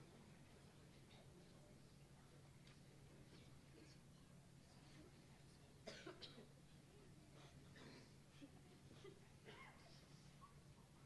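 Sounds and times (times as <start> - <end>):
person coughing: 5.8 - 6.5.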